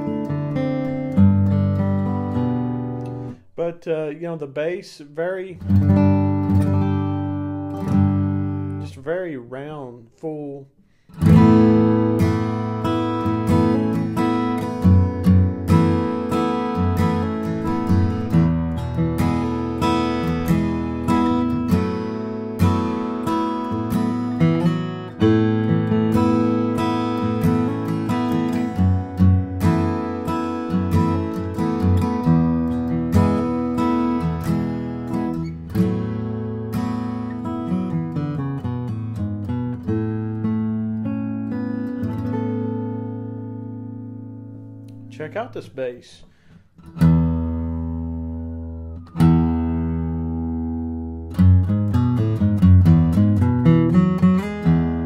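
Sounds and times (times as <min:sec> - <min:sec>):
acoustic guitar strumming and picking: 0:00.0 - 0:55.0.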